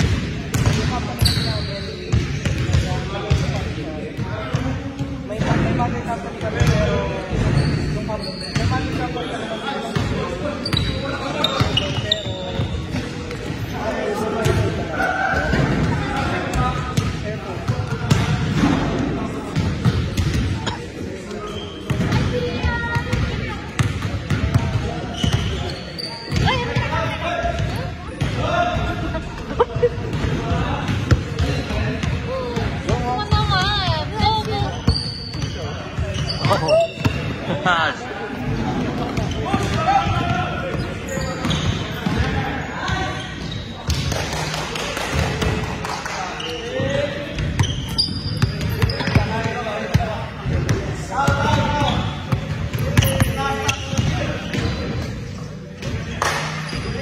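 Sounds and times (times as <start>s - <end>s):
sneakers squeaking: 0.0s - 44.2s, 45.2s - 57.0s
shoe squeaks: 1.2s - 2.6s, 7.4s - 13.0s, 20.6s - 22.0s, 25.0s - 27.1s, 33.9s - 37.4s, 39.0s - 39.9s, 40.7s - 43.9s, 46.4s - 49.8s, 51.5s - 55.2s, 56.6s - 57.0s.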